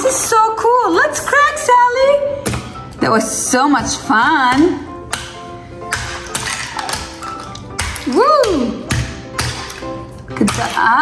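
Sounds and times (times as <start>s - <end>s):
background music: 0.0s - 11.0s
rubber mallet tapping ice: 3.8s - 11.0s.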